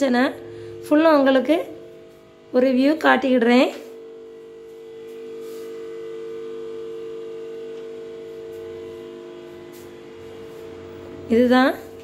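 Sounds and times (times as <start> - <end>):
hum of held tones: 0.0 - 12.0.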